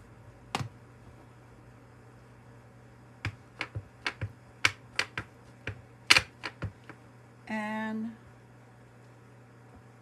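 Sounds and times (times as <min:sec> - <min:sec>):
low steady hum: 0:00.0 - 0:10.0
stamp block tapping on ink pad: 0:03.2 - 0:07.0.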